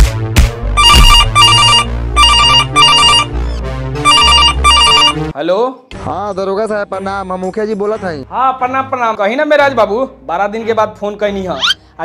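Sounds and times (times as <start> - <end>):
telephone ringing: 0.8 - 3.3, 4.0 - 5.3.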